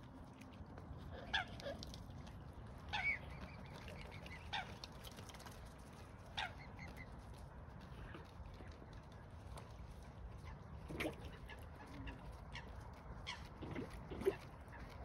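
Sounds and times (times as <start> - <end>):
swans calling: 1.0 - 7.2, 10.3 - 15.0.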